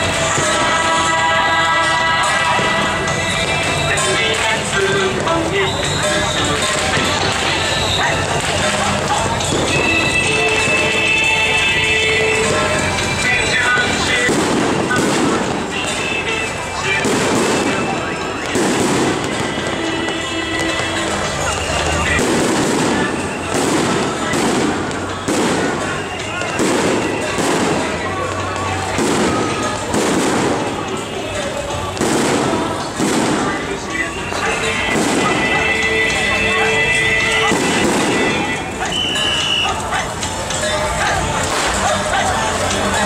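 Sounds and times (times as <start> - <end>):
crowd chatter: 0.0 - 43.0
fireworks bangs: 0.0 - 43.0
procession music: 0.0 - 43.0.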